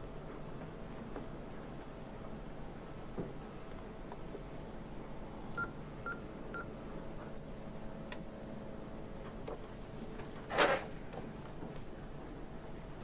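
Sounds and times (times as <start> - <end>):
electronic keypad beeps: 5.6 - 6.7.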